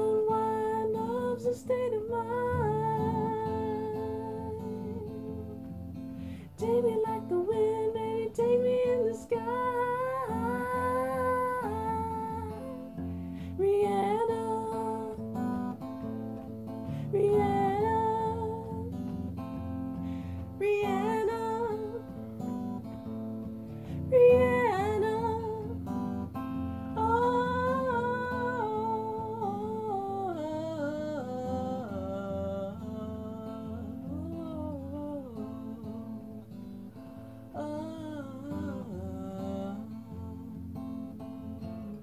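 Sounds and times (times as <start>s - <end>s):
wordless singing voice: 0.0s - 16.1s, 16.8s - 19.2s, 20.0s - 22.3s, 23.9s - 25.9s, 26.9s - 36.5s, 37.5s - 40.8s
acoustic guitar chords: 0.0s - 42.0s.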